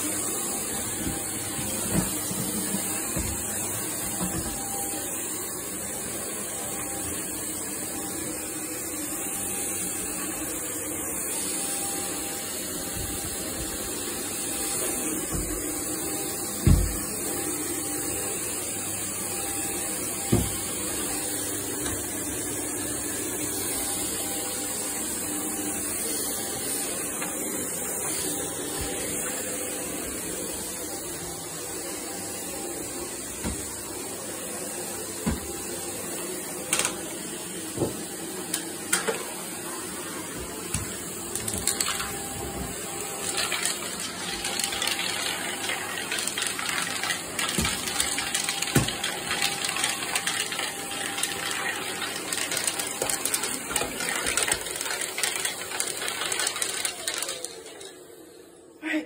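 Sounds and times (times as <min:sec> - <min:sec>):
vacuum cleaner on carpet: 0:00.0 - 0:59.0.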